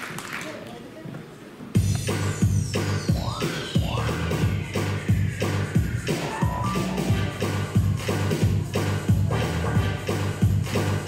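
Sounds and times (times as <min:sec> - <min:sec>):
electronic dance backing track: 0:01.8 - 0:11.0.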